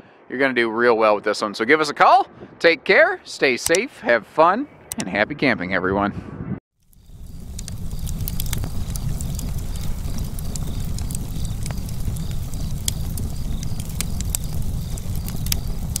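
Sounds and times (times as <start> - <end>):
wood fire crackling: 6.8 - 16.0.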